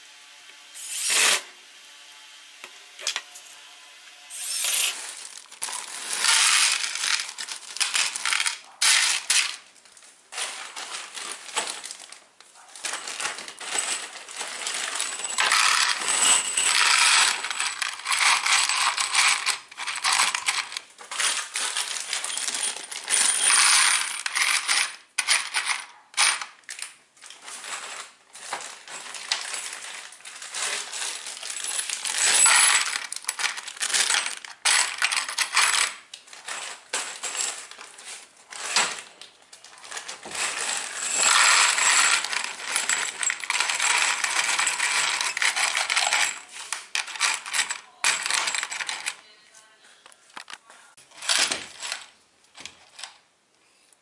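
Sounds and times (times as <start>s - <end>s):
metal screws rattling in plastic tray: 4.3s - 9.7s, 12.8s - 49.2s.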